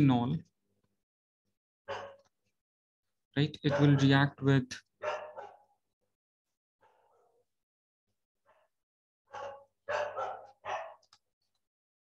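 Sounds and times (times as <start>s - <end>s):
dog barking: 1.9s - 2.3s, 3.7s - 4.2s, 5.0s - 5.8s, 6.8s - 7.5s, 8.5s - 11.1s.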